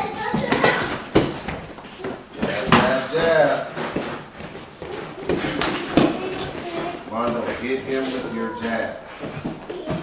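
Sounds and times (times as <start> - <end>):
gloves and feet slapping: 0.0 - 7.6.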